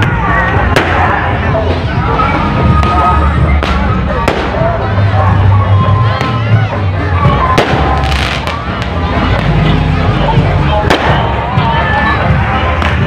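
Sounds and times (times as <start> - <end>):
booming bass-heavy music: 0.0 - 13.0
crowd voices: 0.0 - 13.0
firecracker cracks: 3.6 - 4.7, 7.5 - 9.6, 10.8 - 11.4.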